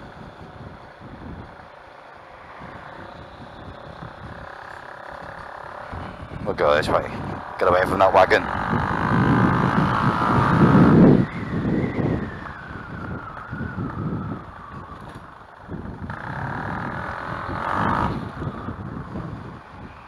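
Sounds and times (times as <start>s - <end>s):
scooter engine whining: 0.0s - 20.0s
wind on microphone: 0.0s - 20.0s.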